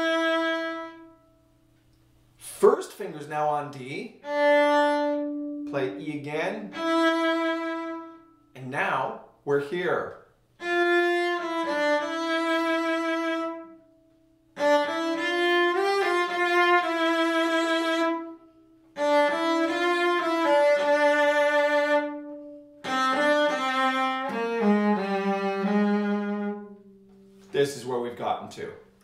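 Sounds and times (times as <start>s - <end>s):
bowed cello melody: 0.0s - 1.4s, 4.1s - 8.5s, 10.6s - 13.9s, 14.6s - 27.5s.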